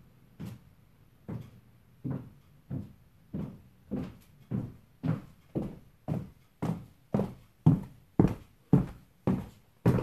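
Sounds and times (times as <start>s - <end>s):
high heels on hardwood floor: 1.3s - 10.0s.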